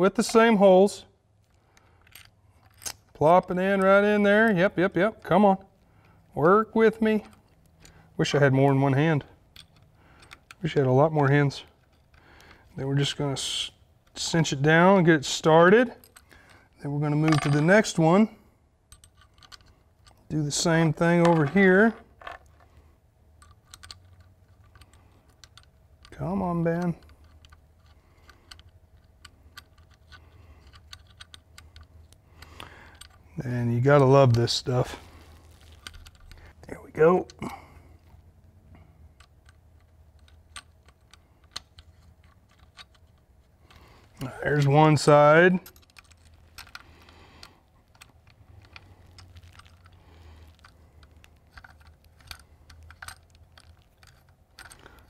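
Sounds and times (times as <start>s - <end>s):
metal allen key and screws clicking: 1.4s - 4.0s, 9.5s - 10.8s, 18.9s - 21.6s, 23.4s - 33.3s, 38.9s - 55.0s.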